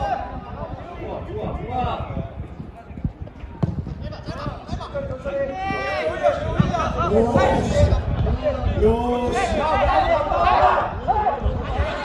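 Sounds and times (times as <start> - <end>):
football kick thuds: 3.6 - 4.8, 6.4 - 7.6.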